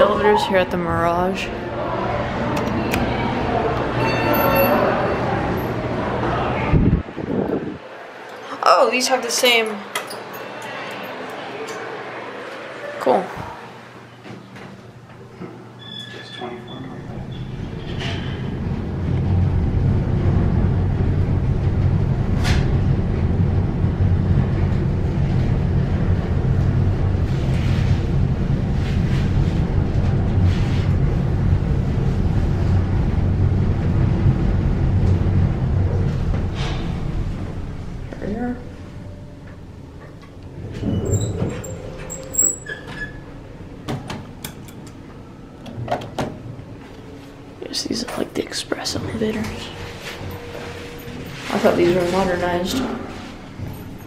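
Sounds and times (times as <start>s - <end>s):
elevator car rumble: 0.0s - 8.2s, 15.8s - 54.0s
elevator doors clattering open: 2.5s - 6.3s, 15.8s - 27.2s, 32.3s - 38.1s, 39.3s - 46.5s, 49.1s - 54.0s
brief high tones: 4.0s - 5.2s.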